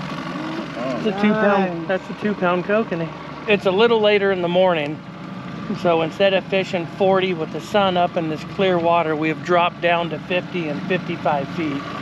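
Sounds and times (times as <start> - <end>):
boat motor humming: 0.0 - 12.0
man talking: 0.6 - 5.0, 5.6 - 11.9.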